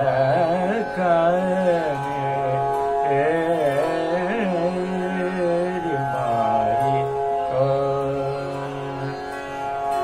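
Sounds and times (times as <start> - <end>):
man singing long low note: 0.0 - 9.4.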